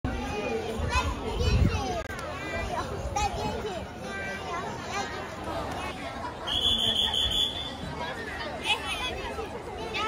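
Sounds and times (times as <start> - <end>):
chatter of children and adults: 0.0 - 10.0.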